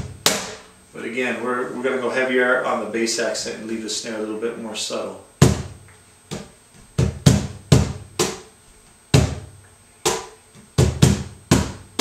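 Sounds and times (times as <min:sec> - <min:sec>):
cajon bass strokes: 0:00.0 - 0:00.7, 0:05.4 - 0:12.0
cajon snare slaps: 0:00.0 - 0:00.7, 0:05.4 - 0:08.5, 0:09.1 - 0:12.0.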